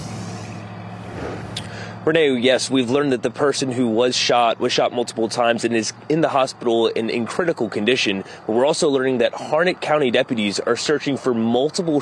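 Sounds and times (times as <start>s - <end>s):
low hum: 0.0s - 4.0s
outdoor background noise: 0.0s - 12.0s.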